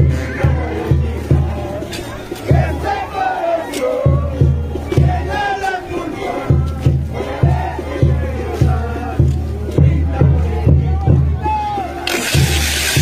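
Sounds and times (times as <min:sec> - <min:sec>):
band music with heavy drum beat: 0:00.0 - 0:03.0, 0:03.6 - 0:05.4, 0:06.4 - 0:13.0.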